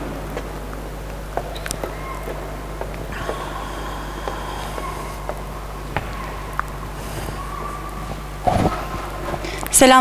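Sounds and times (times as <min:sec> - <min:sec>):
faint room noise: 0:00.0 - 0:10.0
sound system hum: 0:00.0 - 0:10.0.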